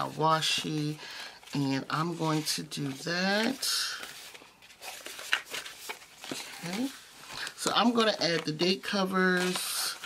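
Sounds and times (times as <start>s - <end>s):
paper sticker sheets rustling: 0.0s - 10.0s.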